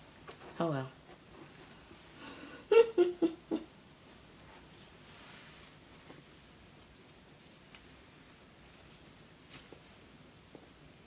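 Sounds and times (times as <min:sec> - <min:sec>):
woman laughing: 0:02.4 - 0:03.7.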